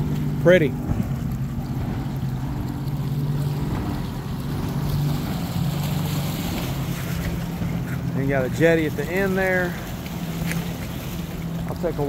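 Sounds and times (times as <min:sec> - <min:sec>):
low engine hum: 0:00.0 - 0:12.0
wind buffeting microphone: 0:00.0 - 0:12.0.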